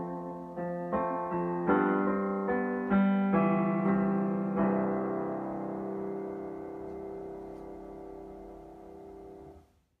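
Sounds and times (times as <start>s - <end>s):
piano chord ringing out: 0.0s - 9.7s.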